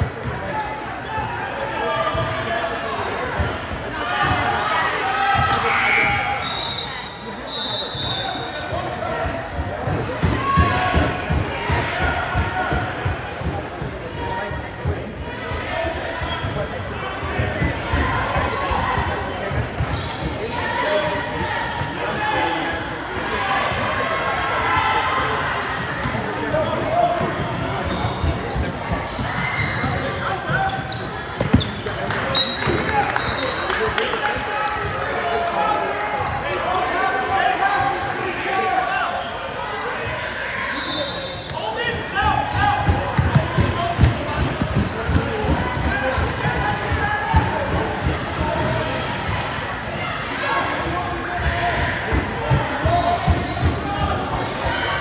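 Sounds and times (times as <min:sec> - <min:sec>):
players and spectators talking: 0:00.0 - 0:55.0
basketballs bouncing on hardwood: 0:29.8 - 0:31.8, 0:42.8 - 0:45.9.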